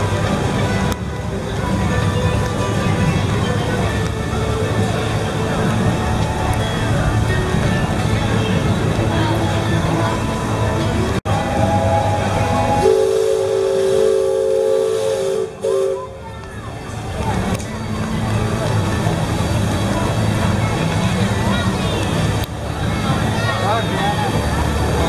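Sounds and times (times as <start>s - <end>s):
voices of onlookers: 0.0s - 25.0s
steam whistle two-tone chord: 11.3s - 16.1s.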